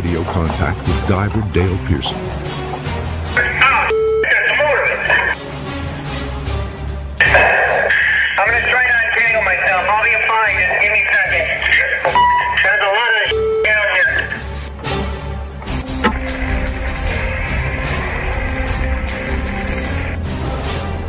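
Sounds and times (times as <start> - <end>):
background music: 0.0 - 21.0
short beeps: 3.9 - 4.3, 13.3 - 13.8
radio hiss: 7.2 - 8.8.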